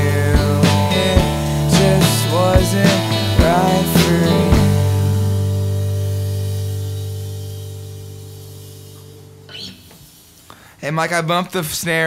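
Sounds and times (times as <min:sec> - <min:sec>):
guitar chord ringing out: 0:00.0 - 0:09.8
man speaking: 0:10.8 - 0:12.0.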